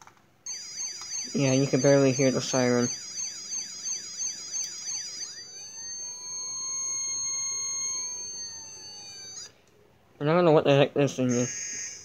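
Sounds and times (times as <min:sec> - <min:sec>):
steady electronic tone: 0:00.5 - 0:09.5
toy siren warbling: 0:00.5 - 0:09.6.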